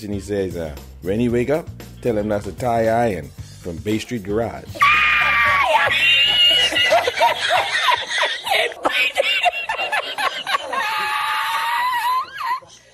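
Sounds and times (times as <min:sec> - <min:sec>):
high-pitched laughter: 0:04.8 - 0:12.8.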